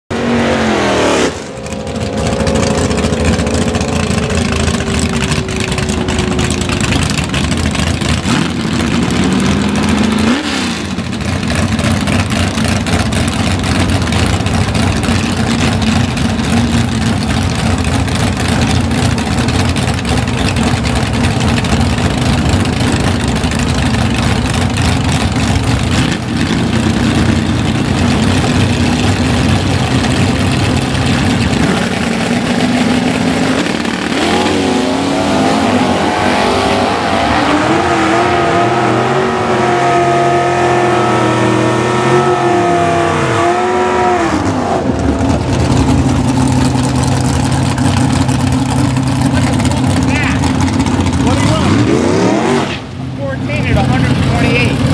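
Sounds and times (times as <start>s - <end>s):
race car engine revving: 0.1s - 54.9s.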